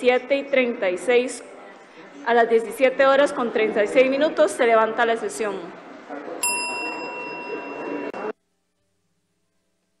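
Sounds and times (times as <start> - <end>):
low murmur of voices: 0.0 - 8.4
bell ringing high clear tone: 6.4 - 8.3.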